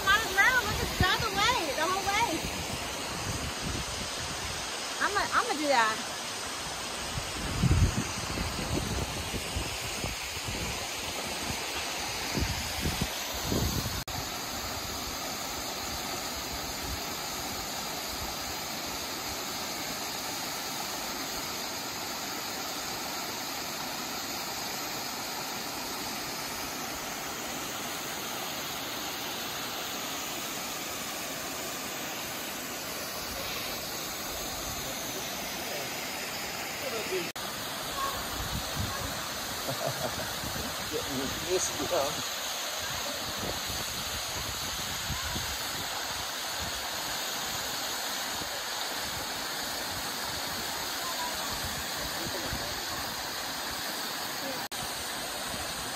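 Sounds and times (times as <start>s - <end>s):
waterfall rushing onto rocks: 0.0s - 55.9s.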